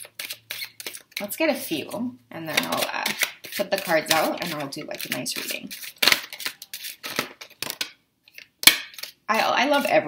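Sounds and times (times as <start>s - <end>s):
cards shuffling: 0.0s - 1.2s, 2.5s - 9.2s.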